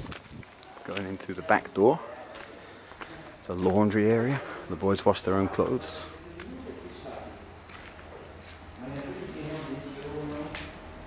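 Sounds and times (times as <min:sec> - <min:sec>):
person speaking: 0:00.7 - 0:11.0.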